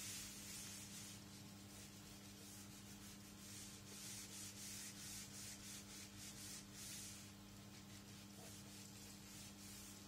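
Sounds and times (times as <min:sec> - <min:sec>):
eraser rubbing whiteboard: 0:00.0 - 0:10.0.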